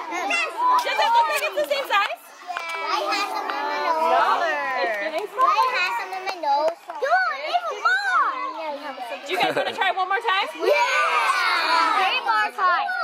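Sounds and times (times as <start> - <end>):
young children chattering: 0.0 - 13.0.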